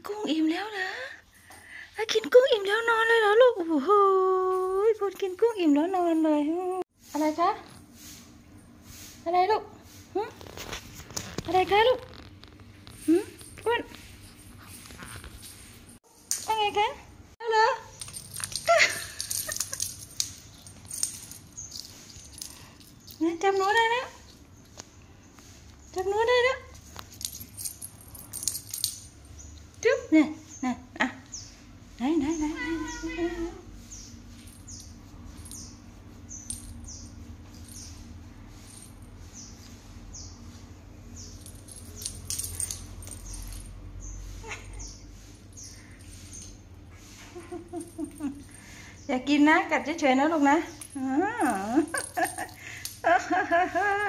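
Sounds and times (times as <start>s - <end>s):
cat scuffling and clicks on tiles: 18.0s - 23.2s
cat meowing: 32.5s - 33.6s.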